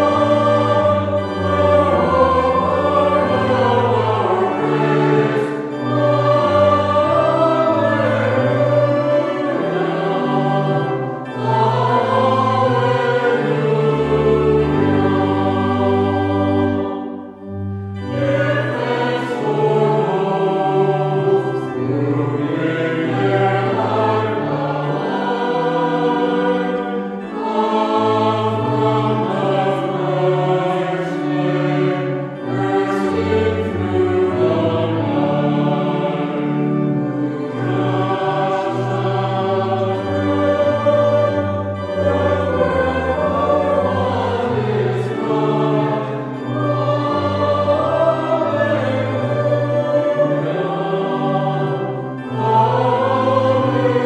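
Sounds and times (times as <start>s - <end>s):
choir singing a hymn: 0.0s - 54.0s.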